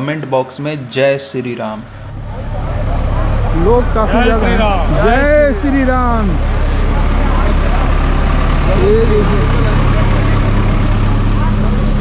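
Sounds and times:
people's voices: 0.0 - 12.0
low vehicle engine hum: 1.8 - 12.0.

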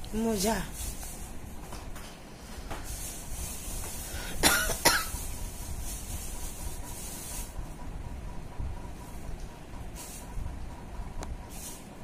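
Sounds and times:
person coughing: 4.3 - 5.2.

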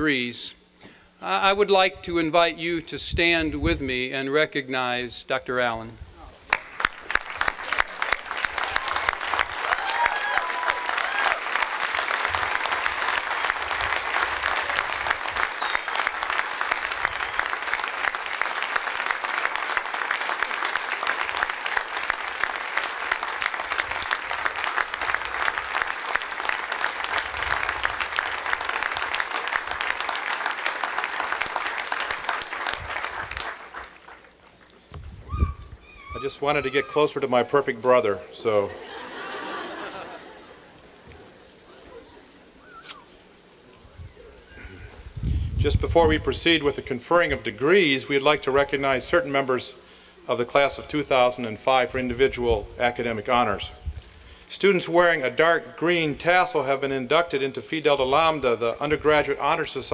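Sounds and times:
large audience applause: 6.5 - 34.5.

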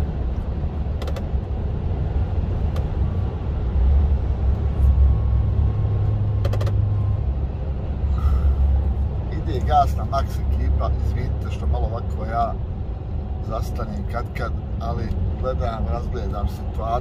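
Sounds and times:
truck engine and tyres drone: 0.0 - 17.0.

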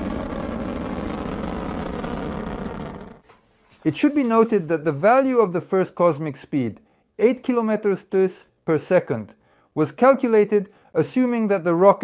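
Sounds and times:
rocket engines rumbling: 0.0 - 3.2.

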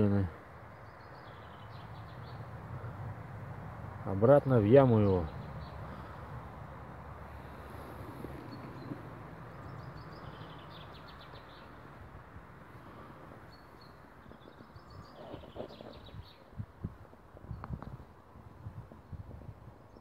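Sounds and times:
bird singing high trills: 8.4 - 11.8.

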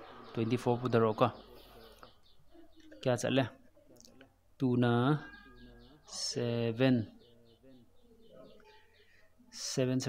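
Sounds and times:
faint bird chirps: 0.0 - 10.0.

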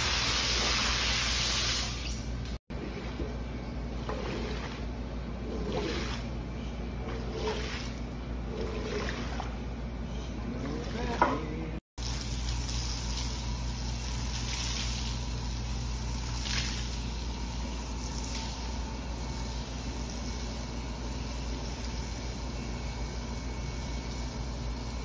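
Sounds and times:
steady low hum: 2.2 - 25.0
squeegee swishing water on rug: 4.0 - 6.3, 7.0 - 9.6, 12.0 - 15.3
water splashing onto a rug: 12.0 - 15.3, 16.2 - 17.1.

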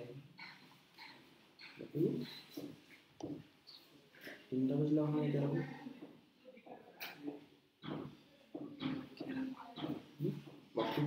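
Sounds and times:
person speaking: 4.2 - 11.0.

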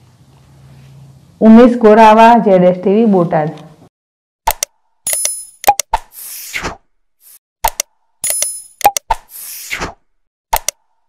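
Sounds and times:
short pops or clicks: 4.5 - 6.8, 7.6 - 10.9.

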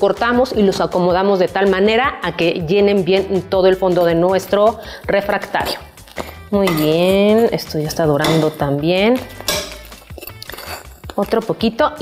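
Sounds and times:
metal tongs clinking on frying pan: 6.5 - 11.2.

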